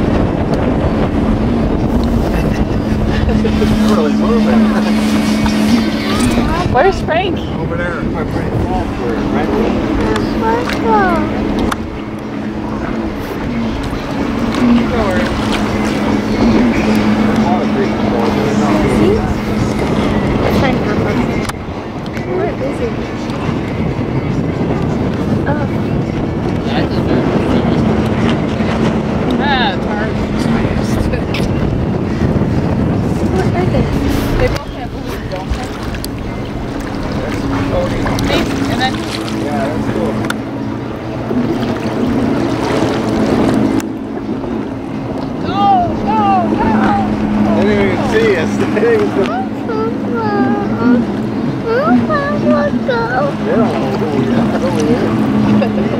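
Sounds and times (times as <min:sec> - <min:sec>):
outboard motor running: 0:00.0 - 0:55.9
rushing water: 0:00.0 - 0:55.9
wind: 0:00.0 - 0:55.9.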